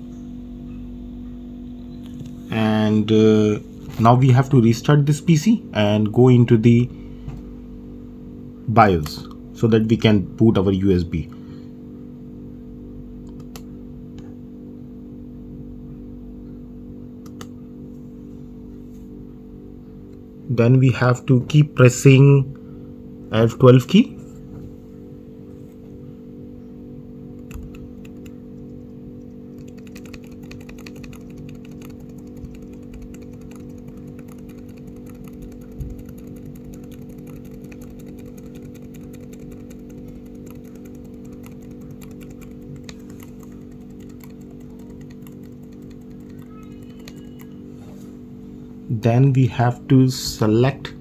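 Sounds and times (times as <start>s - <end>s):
steady low hum: 0.0s - 51.0s
laptop key clicking: 29.6s - 47.5s.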